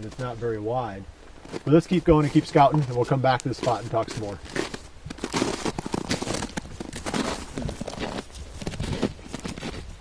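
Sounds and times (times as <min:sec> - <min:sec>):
footsteps in snow: 0:00.0 - 0:10.0.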